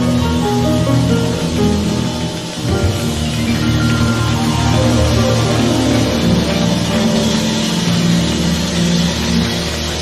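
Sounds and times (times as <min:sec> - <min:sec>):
jazz band playing: 0:00.0 - 0:08.8.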